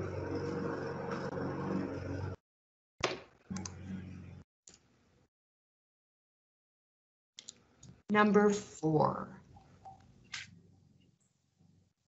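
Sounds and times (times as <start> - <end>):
steady low hum: 0.0 - 2.4, 3.5 - 4.4.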